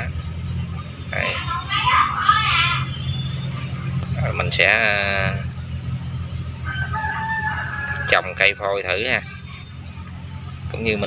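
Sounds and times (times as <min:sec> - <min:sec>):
steady low hum: 0:00.0 - 0:11.0
rooster crowing: 0:06.6 - 0:09.4.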